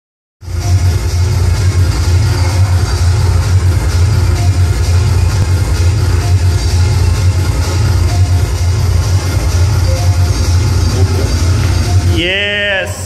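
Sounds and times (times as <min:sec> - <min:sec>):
electronic dance music: 0:00.4 - 0:13.0.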